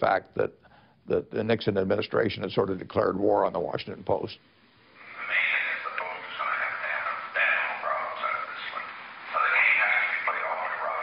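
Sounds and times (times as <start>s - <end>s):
man speaking on tinny tape recording: 0.0s - 4.5s, 5.1s - 11.0s.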